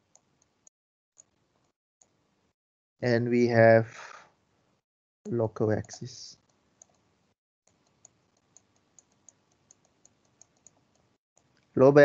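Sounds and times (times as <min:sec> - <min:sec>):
man talking: 0:03.0 - 0:04.2, 0:05.3 - 0:06.3, 0:11.8 - 0:12.0.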